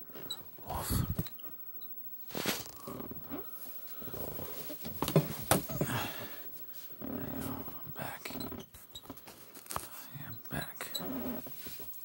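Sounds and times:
breathy mouth sounds: 0:00.6 - 0:01.4.

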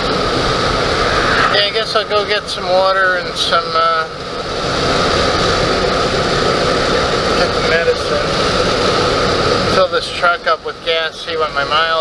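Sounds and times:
truck cabin road noise: 0:00.0 - 0:12.0.

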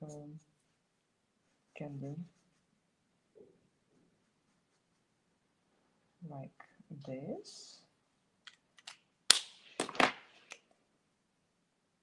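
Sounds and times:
plastic marker caps snapping: 0:08.5 - 0:10.2.

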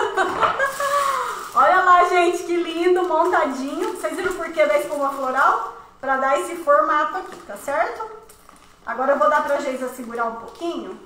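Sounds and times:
woman speaking: 0:01.3 - 0:11.0.

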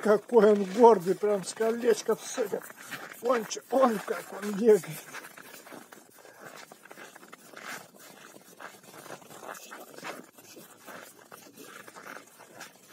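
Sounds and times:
dog steps crunching on snow: 0:00.0 - 0:12.9.

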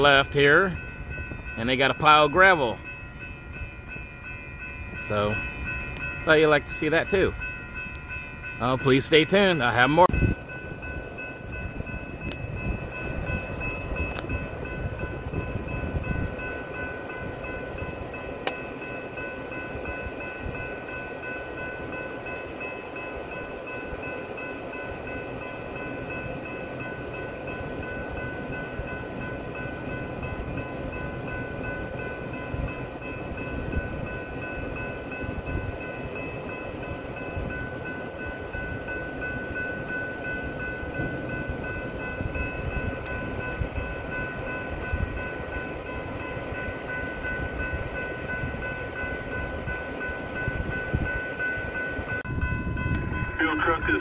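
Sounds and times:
diesel locomotives idling: 0:00.0 - 0:54.0
steady high-pitched tones: 0:00.0 - 0:54.0.

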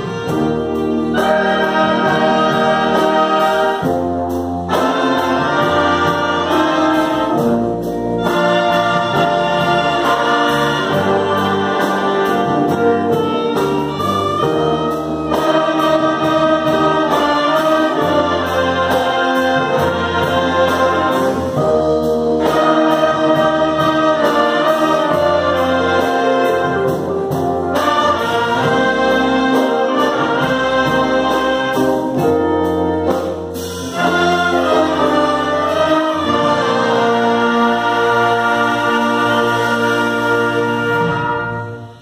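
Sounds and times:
wind band playing sustained chords: 0:00.0 - 0:42.0.

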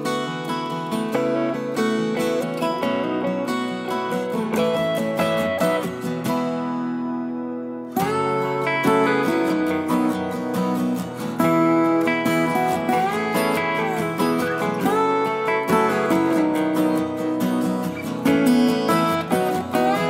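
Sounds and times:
acoustic guitar playing: 0:00.0 - 0:20.0.

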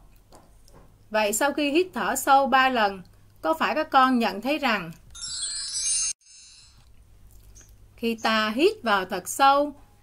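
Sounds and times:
tinkling chime: 0:05.2 - 0:06.8.

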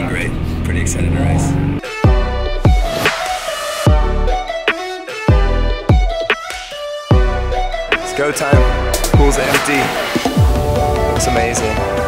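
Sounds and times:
man talking: 0:00.0 - 0:01.6, 0:08.0 - 0:10.2, 0:10.9 - 0:12.0.

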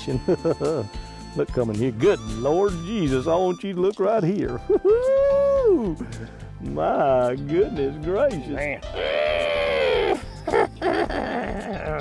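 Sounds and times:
man laughing: 0:00.0 - 0:00.9, 0:04.4 - 0:06.0, 0:10.1 - 0:12.0.

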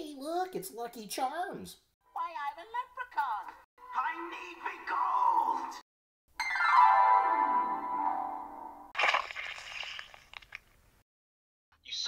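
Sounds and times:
crunching crackling sound: 0:09.0 - 0:10.8.

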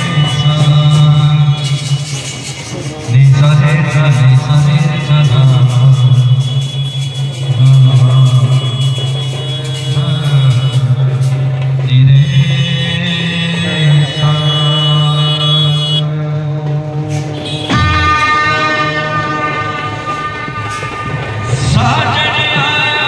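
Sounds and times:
brass band playing: 0:17.1 - 0:23.0.

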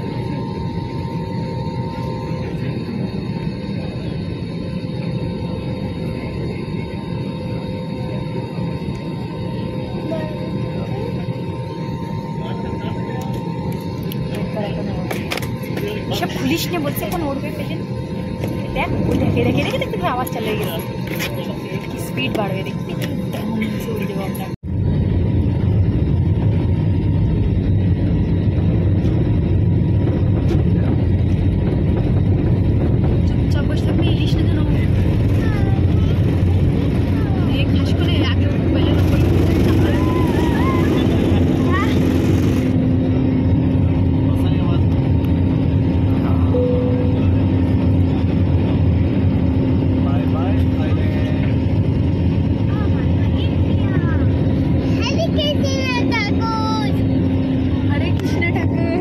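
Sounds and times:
jet engines rumbling in cabin: 0:00.0 - 0:59.0
steady hum: 0:00.0 - 0:59.0.

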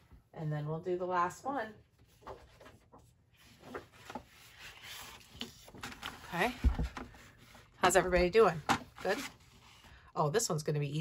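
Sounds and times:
paper sheets rustling: 0:02.0 - 0:09.9.

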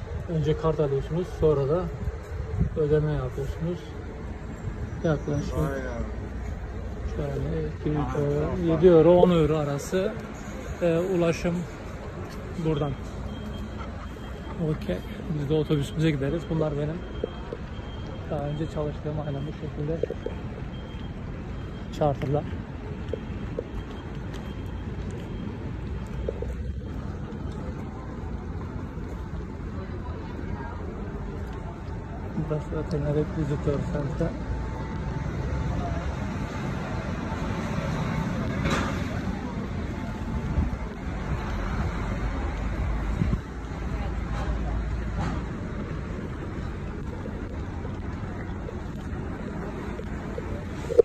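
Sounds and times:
vehicle engines rumbling: 0:00.0 - 0:51.0.

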